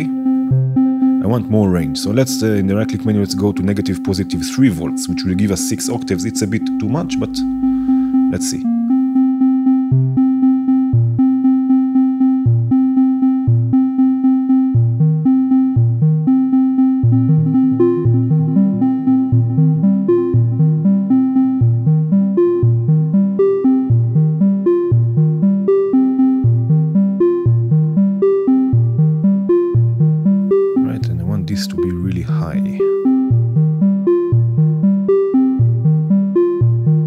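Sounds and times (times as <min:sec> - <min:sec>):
steady held synth tone: 0:00.0 - 0:37.0
synth short pitched notes: 0:05.6 - 0:09.4, 0:16.3 - 0:23.2.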